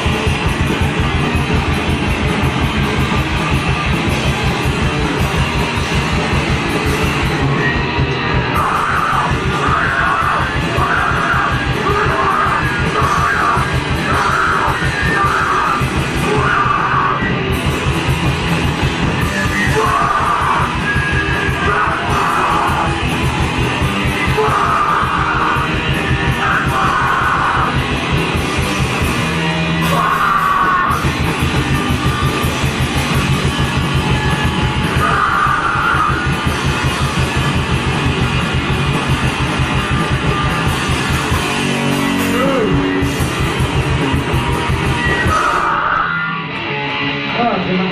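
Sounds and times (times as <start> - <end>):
heavy rock band playing: 0.0 - 47.9
vocalist yelling: 8.5 - 17.4, 19.3 - 23.1, 24.1 - 27.8, 29.8 - 31.2, 34.9 - 36.5, 42.2 - 43.0, 45.1 - 46.5.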